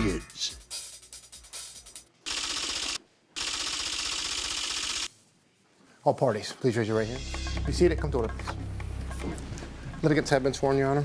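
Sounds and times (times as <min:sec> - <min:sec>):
rapid typewriter-like clicking: 0:02.3 - 0:05.1.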